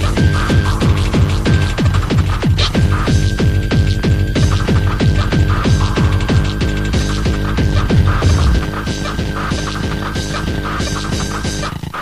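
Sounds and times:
pounding kick drum: 0.2s - 10.6s
high synth tone: 4.6s - 10.4s.

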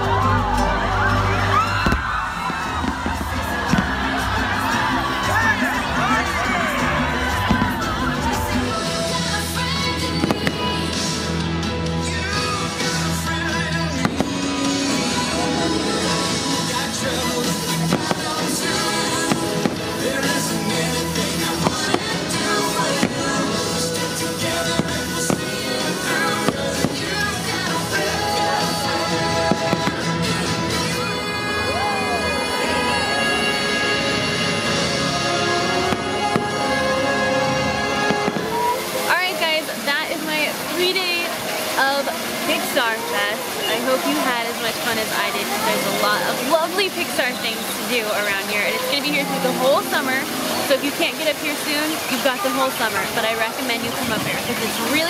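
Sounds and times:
music playing: 0.0s - 55.0s
firework bangs: 1.7s - 11.2s, 12.5s - 31.5s, 34.2s - 49.0s.

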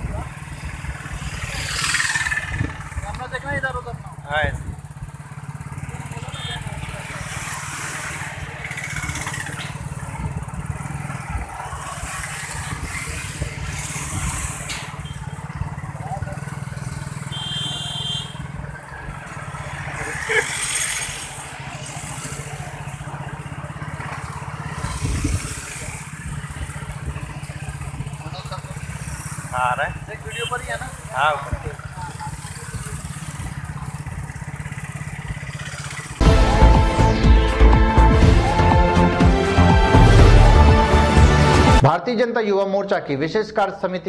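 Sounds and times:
motorcycle and traffic rumble: 0.0s - 41.9s
wind: 0.0s - 44.0s.

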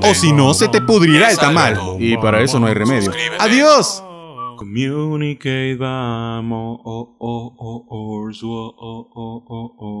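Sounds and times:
man chanting on one note: 0.0s - 4.8s.

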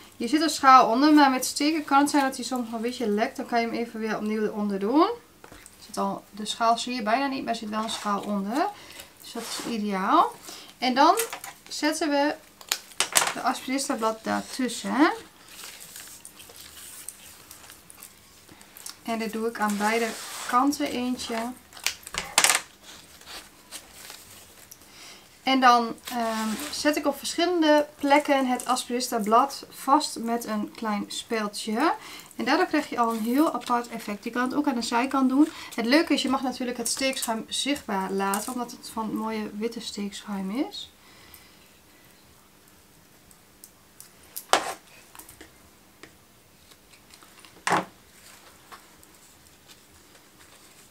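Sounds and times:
faint leaf rustling: 7.5s - 10.4s, 13.5s - 21.6s, 26.0s - 29.2s.

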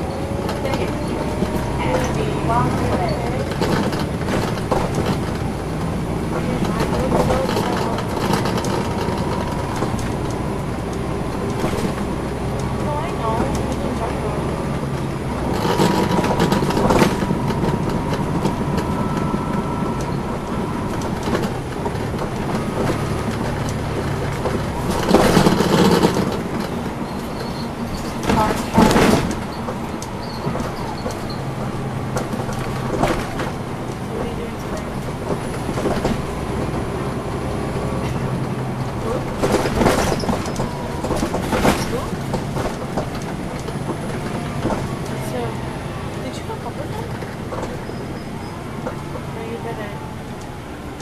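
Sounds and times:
bus diesel engine running: 0.0s - 51.0s
road noise: 0.0s - 51.0s.

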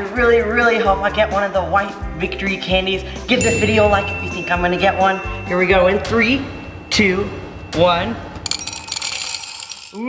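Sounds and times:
candies clattering into ceramic bowl: 8.5s - 10.0s.

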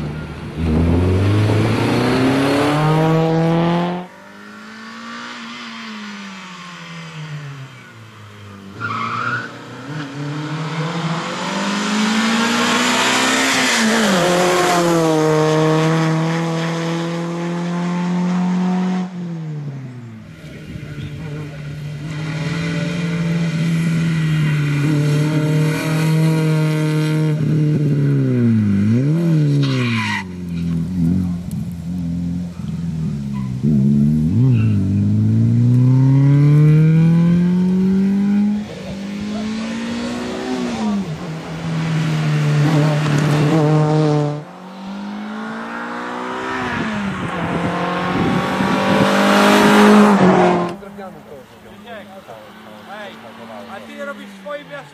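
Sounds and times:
rally car engine revving: 0.0s - 54.9s.

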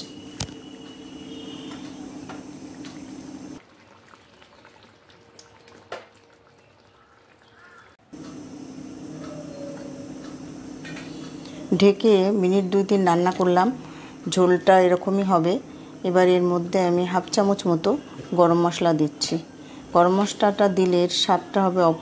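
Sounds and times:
curry bubbling in a pot: 2.8s - 8.0s
steady low hum: 8.0s - 18.6s.

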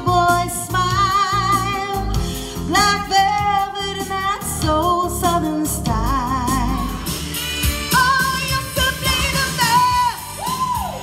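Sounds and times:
woman singing into microphone: 0.0s - 7.1s, 7.9s - 11.0s
pop backing track: 0.0s - 11.0s.

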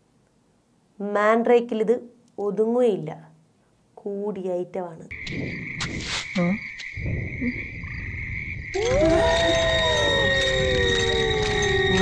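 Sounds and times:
insects chirping: 5.1s - 12.0s.

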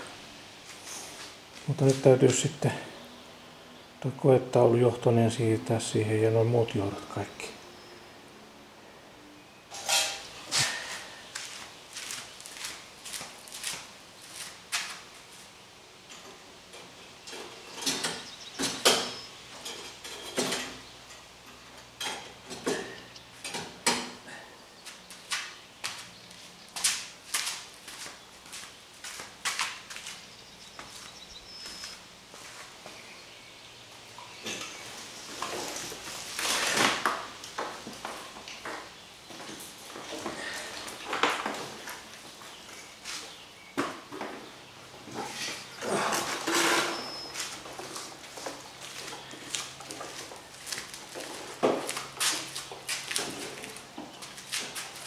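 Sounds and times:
metal scraping and rustling: 9.7s - 11.0s, 34.5s - 37.4s, 45.0s - 55.0s.

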